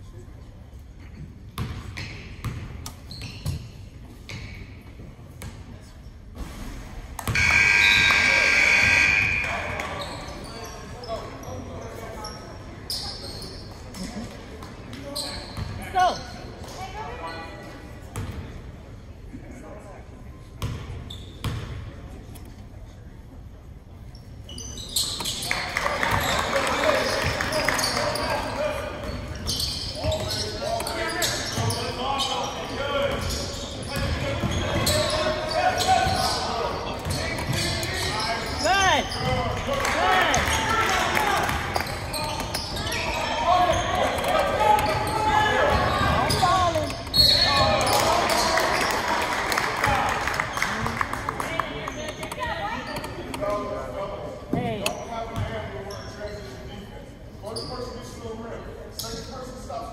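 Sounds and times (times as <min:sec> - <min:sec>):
sneakers squeaking: 0:01.0 - 0:05.6, 0:07.2 - 0:18.4, 0:20.6 - 0:21.8, 0:24.1 - 0:39.6, 0:40.2 - 0:53.7, 0:54.4 - 0:56.7, 0:57.4 - 0:58.2
people shouting and talking: 0:07.3 - 0:18.0, 0:25.3 - 0:55.7.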